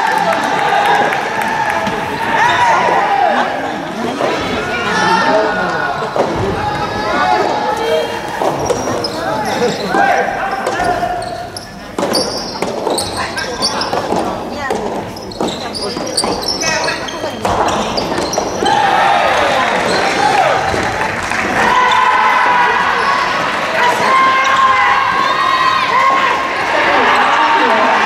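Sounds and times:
people shouting: 0:00.0 - 0:11.4, 0:18.6 - 0:28.0
crowd cheering: 0:00.0 - 0:11.6, 0:16.6 - 0:28.0
ball bouncing on wooden floor: 0:11.9 - 0:18.7.

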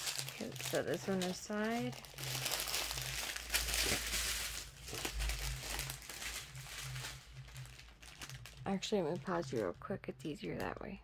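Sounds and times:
packaging rustling and crinkling: 0:00.0 - 0:10.0.

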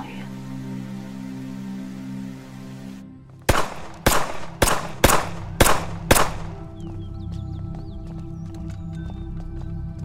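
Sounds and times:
pistol shots: 0:03.5 - 0:06.7.

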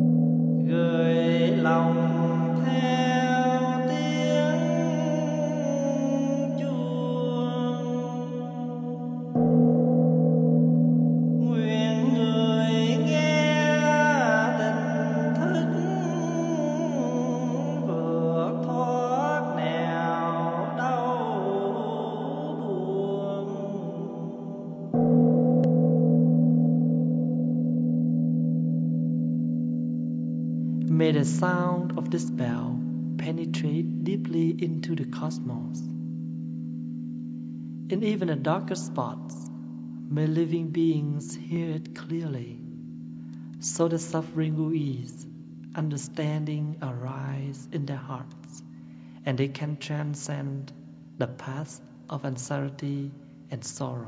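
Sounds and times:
temple bell humming: 0:00.0 - 0:54.0
person chanting in long held notes: 0:00.6 - 0:09.5, 0:11.4 - 0:25.1, 0:30.8 - 0:36.0, 0:37.9 - 0:42.7.

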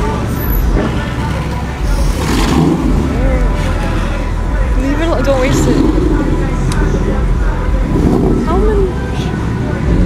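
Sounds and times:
people's voices: 0:00.0 - 0:10.0.

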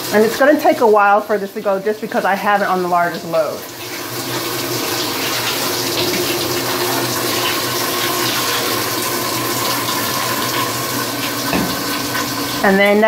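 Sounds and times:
water pouring into washing machine: 0:00.0 - 0:13.0.

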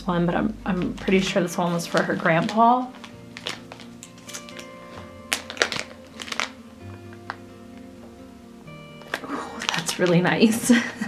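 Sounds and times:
soft background music: 0:00.0 - 0:11.0
plastic packaging crinkling: 0:00.8 - 0:07.8, 0:08.9 - 0:11.0.

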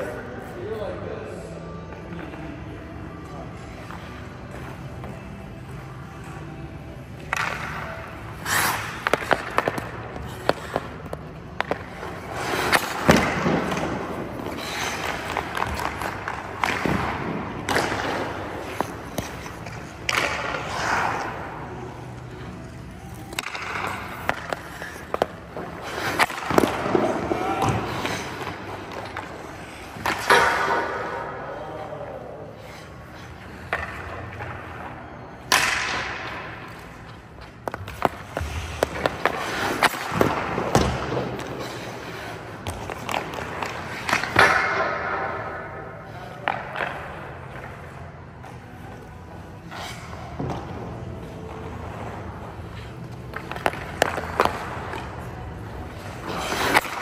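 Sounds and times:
stick striking pucks: 0:07.2 - 0:21.3, 0:23.2 - 0:31.3, 0:35.4 - 0:41.6, 0:42.6 - 0:47.7
skate blades scraping on ice: 0:07.2 - 0:34.9, 0:36.3 - 0:57.0.

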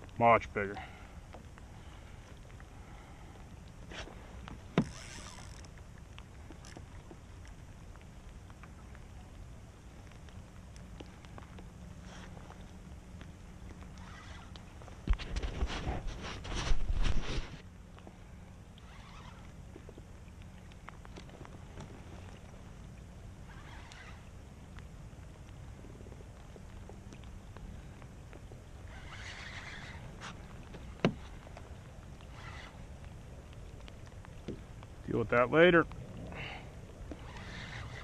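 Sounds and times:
water lapping against kayak hull: 0:00.0 - 0:38.0
rough handling noise: 0:03.8 - 0:05.8, 0:14.0 - 0:17.6, 0:28.8 - 0:32.8, 0:37.0 - 0:38.0.

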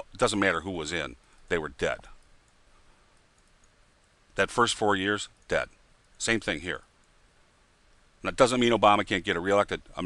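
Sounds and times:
faint clicks: 0:01.3 - 0:04.4, 0:05.3 - 0:06.3, 0:06.9 - 0:07.2, 0:07.9 - 0:08.1.

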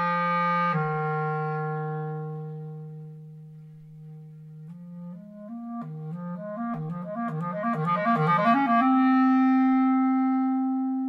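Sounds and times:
clarinet holding a low note: 0:00.0 - 0:11.0.

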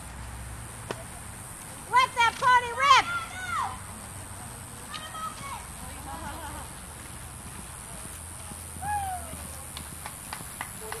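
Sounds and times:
pony hoofbeats cantering: 0:04.8 - 0:11.0.

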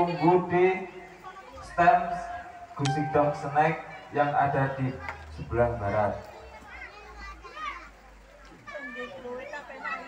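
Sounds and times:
children's voices chattering: 0:00.0 - 0:10.0
loudspeaker announcement: 0:01.9 - 0:04.9.

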